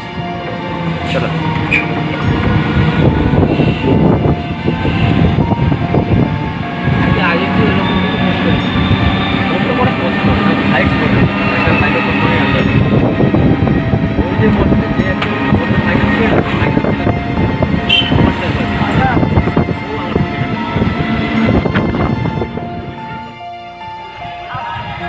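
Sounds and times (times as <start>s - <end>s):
vehicle engine rumble: 0.0s - 24.2s
road noise: 0.0s - 25.0s.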